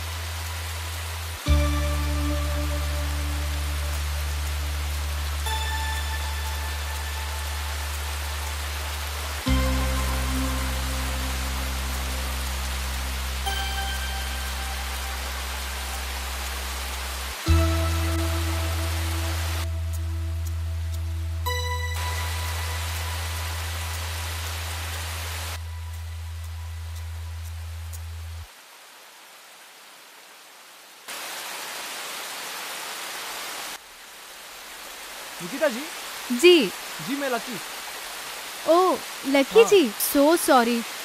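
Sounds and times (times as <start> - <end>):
low sustained chords: 0.0 - 28.5
heavy rain: 0.0 - 41.0.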